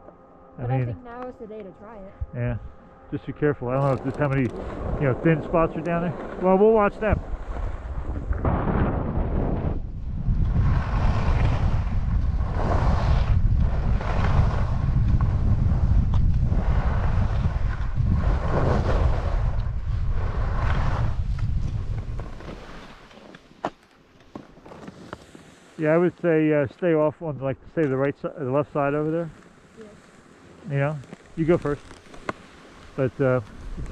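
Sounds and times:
wind rushing over microphone: 0:02.2 - 0:22.9, 0:33.0 - 0:33.9
skis scraping over snow: 0:03.2 - 0:33.9.

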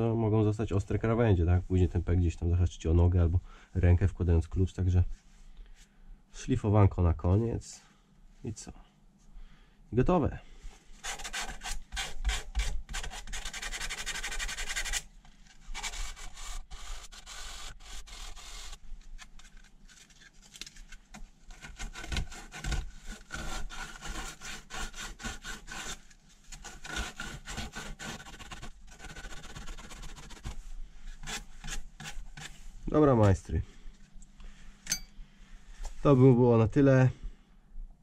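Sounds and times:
sandpaper rubbing on metal: 0:11.0 - 0:15.0, 0:15.7 - 0:18.8, 0:26.6 - 0:30.6.

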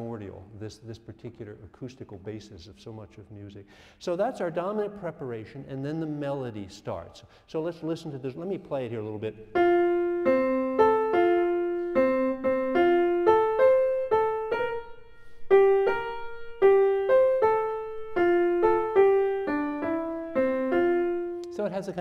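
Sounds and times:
grand piano melody: 0:09.3 - 0:22.0.

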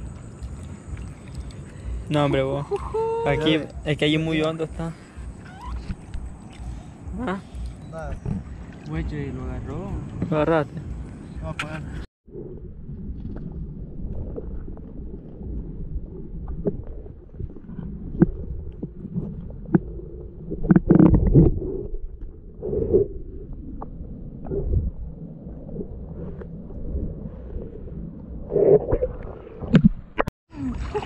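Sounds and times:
muffled low rumbling: 0:00.0 - 0:31.0.

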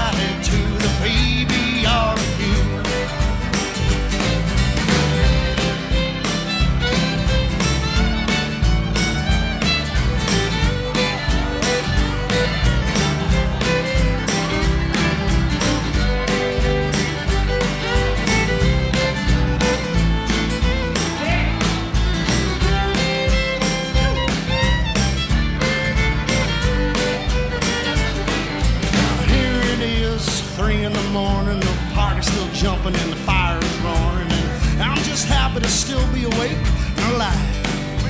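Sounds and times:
bass: 0:00.0 - 0:38.0
drums: 0:00.0 - 0:38.0
fiddle playing: 0:00.0 - 0:38.0
strummed acoustic guitar: 0:00.0 - 0:38.0.

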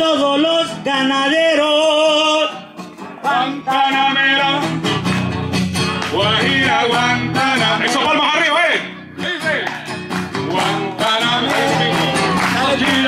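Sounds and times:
man singing: 0:00.0 - 0:05.1, 0:05.8 - 0:13.0
acoustic guitar strumming: 0:00.0 - 0:13.0.

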